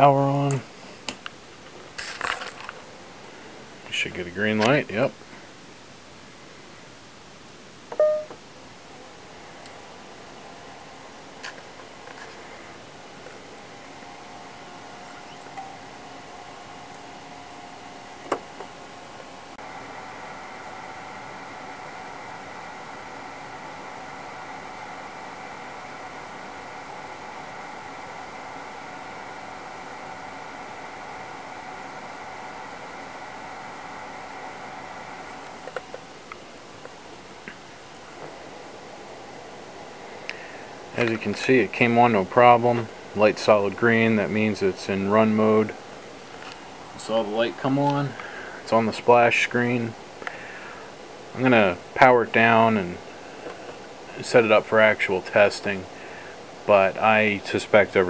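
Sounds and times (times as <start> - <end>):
projector cooling fans whining: 0.0 - 58.0
projector beep: 7.9 - 8.4.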